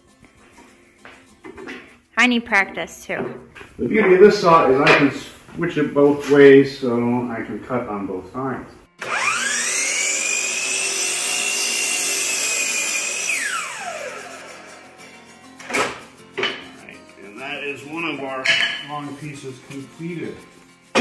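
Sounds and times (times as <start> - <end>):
miter saw cutting wood: 9.0 - 16.6.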